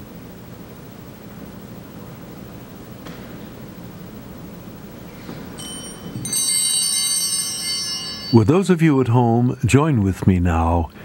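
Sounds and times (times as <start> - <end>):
high ringing chime tones: 5.2 - 10.2.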